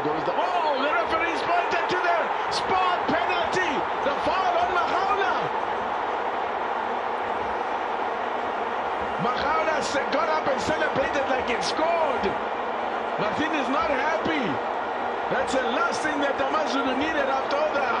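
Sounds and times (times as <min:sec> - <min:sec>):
stadium crowd shouting: 0:00.0 - 0:18.0.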